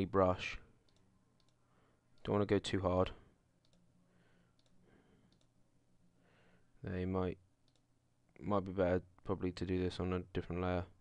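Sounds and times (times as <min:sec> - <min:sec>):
computer mouse clicks: 0:00.8 - 0:01.6, 0:03.6 - 0:03.9, 0:04.5 - 0:05.6, 0:07.6 - 0:07.9.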